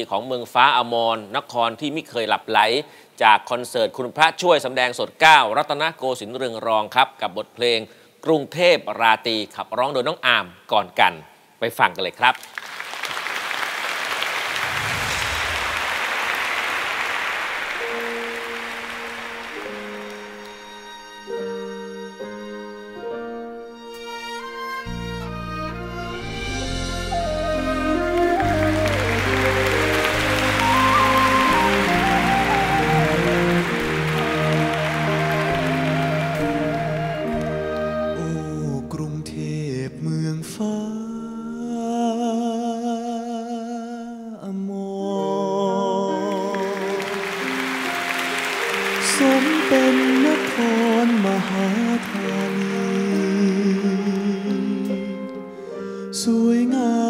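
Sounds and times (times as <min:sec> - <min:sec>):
audience applause: 0:12.4 - 0:20.6, 0:27.9 - 0:37.9, 0:46.3 - 0:54.0
live band playing slow ballad: 0:17.8 - 0:39.6, 0:46.1 - 0:57.0
man singing a slow ballad: 0:38.0 - 0:47.1, 0:49.0 - 0:57.0.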